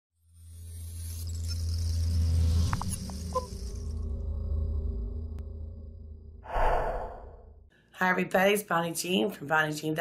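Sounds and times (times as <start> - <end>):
high airy whoosh: 6.4 - 7.6.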